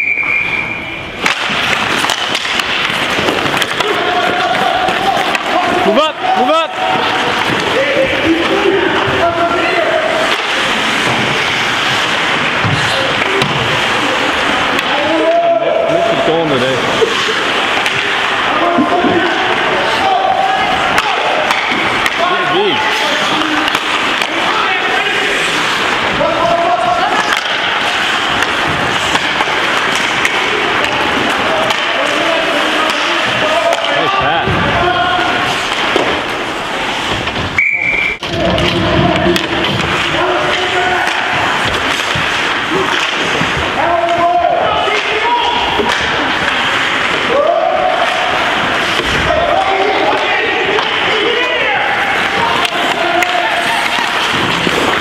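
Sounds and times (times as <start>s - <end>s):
sticks and puck clacking: 1.0s - 55.0s
skate blades scraping ice: 1.2s - 34.2s, 34.8s - 37.6s, 38.3s - 55.0s
din of shouting voices: 3.6s - 36.4s, 37.6s - 55.0s.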